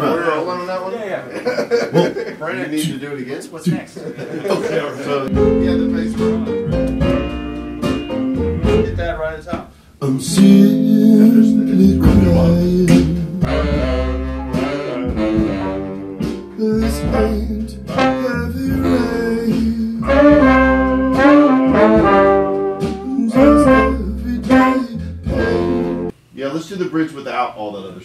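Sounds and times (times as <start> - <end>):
horn section playing: 5.3 - 9.2, 10.7 - 26.1.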